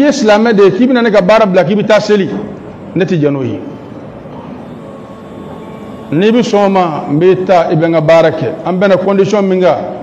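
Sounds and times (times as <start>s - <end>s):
faint thin hum: 2.5s - 9.4s.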